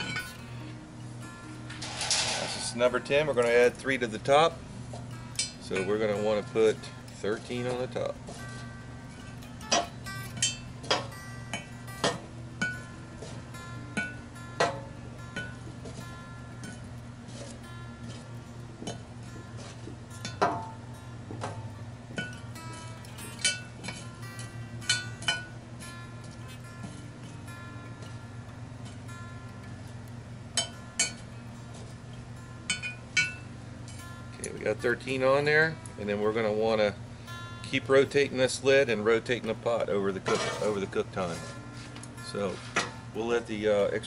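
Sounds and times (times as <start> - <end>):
soft background music: 0.0 - 44.0
tongs clinking on metal lid: 1.7 - 4.4, 5.0 - 12.9, 40.2 - 41.4.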